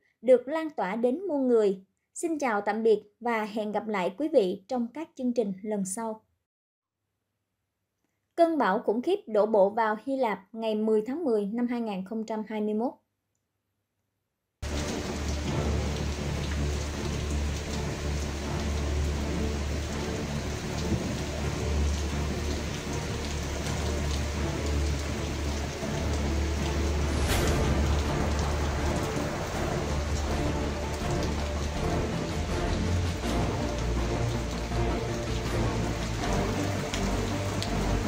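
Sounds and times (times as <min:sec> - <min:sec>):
heavy rain pouring: 0:14.6 - 0:38.0
low rumble: 0:25.9 - 0:37.0
sharp crack: 0:26.6 - 0:31.4.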